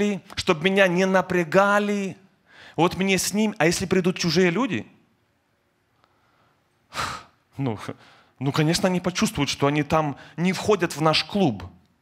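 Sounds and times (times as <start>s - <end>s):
man speaking: 0.0s - 5.0s, 7.5s - 11.8s.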